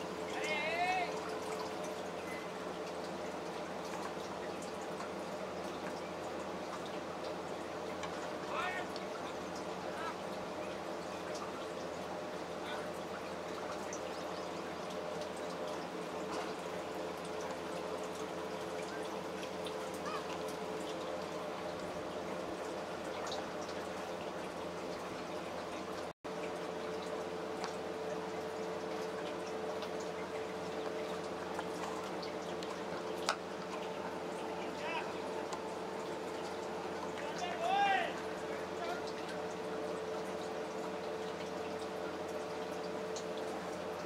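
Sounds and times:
faint hum: 0.0s - 44.0s
person shouting: 37.4s - 38.2s.

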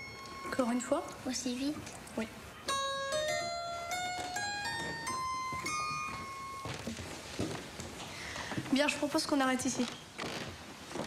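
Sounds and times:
harpsichord playing rising scale: 2.7s - 6.7s.

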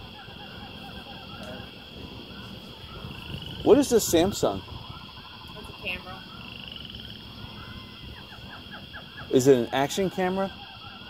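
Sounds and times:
distant voices: 0.0s - 11.0s.

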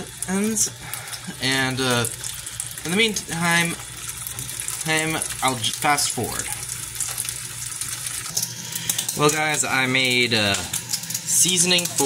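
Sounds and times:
bacon sizzling in a frying pan: 0.0s - 12.0s.

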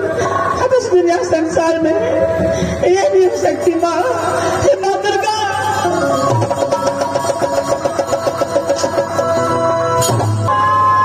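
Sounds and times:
live dance music: 2.8s - 11.0s.

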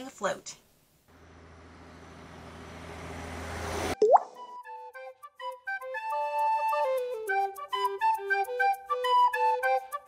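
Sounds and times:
propeller plane engine drone: 1.2s - 4.0s
quick rising bloop: 3.9s - 4.5s
light flute melody: 4.2s - 10.0s.

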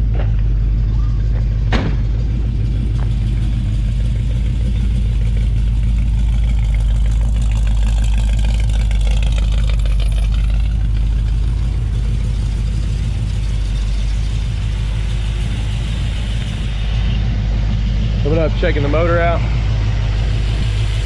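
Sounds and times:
engine idling low rumble: 0.0s - 21.0s.

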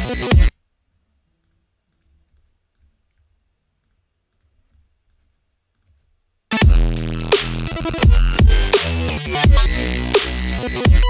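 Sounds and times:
glitched synth bass loop: 0.0s - 0.5s, 6.5s - 11.0s.

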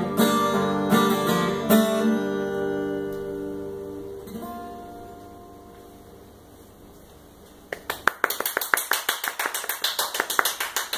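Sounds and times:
acoustic guitar and fiddle chord: 0.0s - 6.0s
quick sharp hand clapping: 7.7s - 10.9s.

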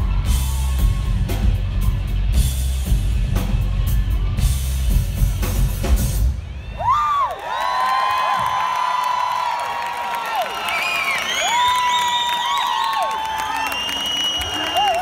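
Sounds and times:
audience cheering and whooping: 0.0s - 1.5s, 6.3s - 15.0s
rock band playing: 0.0s - 6.8s.

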